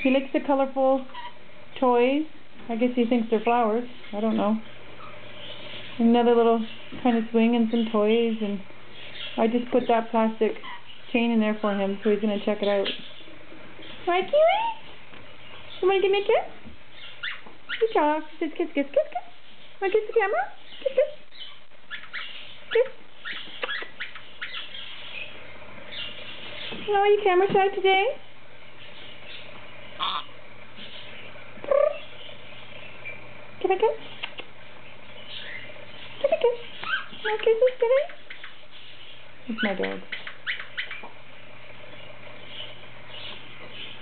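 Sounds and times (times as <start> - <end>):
low room hum: 0.0 - 44.0
parrot chirps and clicks: 20.7 - 25.3, 34.1 - 34.5, 36.2 - 38.9, 39.6 - 41.2.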